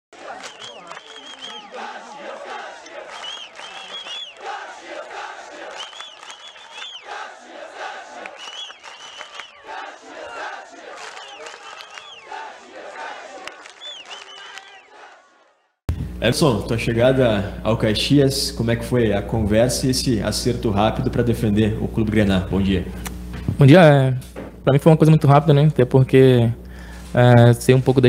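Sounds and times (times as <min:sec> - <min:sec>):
crowd chanting and shouting: 0:00.1 - 0:15.8.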